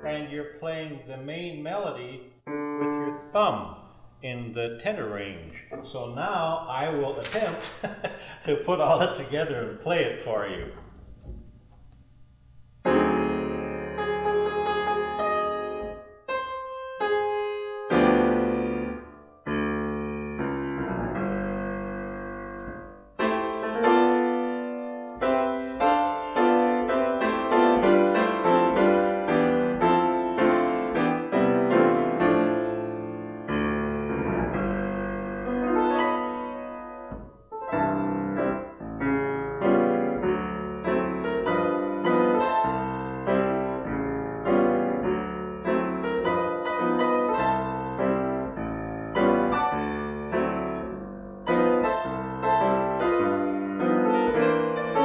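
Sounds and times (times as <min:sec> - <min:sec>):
stride jazz piano: 0:00.0 - 0:55.0.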